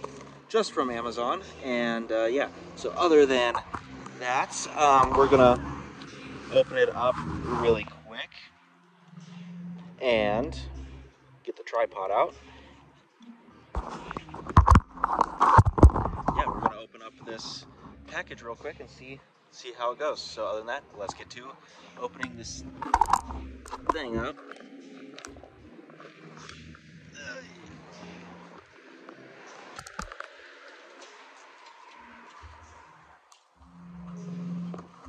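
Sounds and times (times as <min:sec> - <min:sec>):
microphone handling rubbing: 0:06.5 - 0:08.0, 0:13.8 - 0:18.1
faint indistinct voice: 0:26.0 - 0:28.7.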